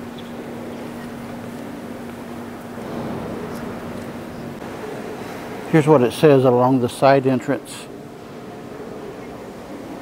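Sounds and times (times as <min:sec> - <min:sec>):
cathedral ambient noise: 0:00.0 - 0:10.0
faint low hum: 0:00.0 - 0:10.0.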